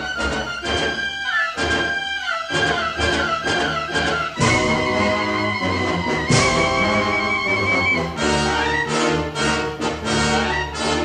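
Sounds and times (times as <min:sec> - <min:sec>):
orchestral music: 0:00.0 - 0:11.0.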